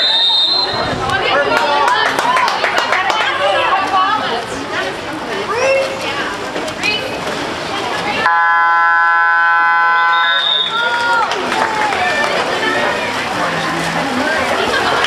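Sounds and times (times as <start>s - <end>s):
referee's whistle: 0.0s - 0.9s, 8.3s - 10.9s
game horn buzzer blast: 8.3s - 10.4s
spectators shouting: 9.3s - 13.0s.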